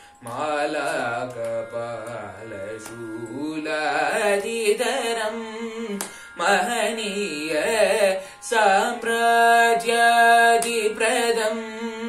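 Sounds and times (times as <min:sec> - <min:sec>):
young man singing: 0:00.2 - 0:12.0.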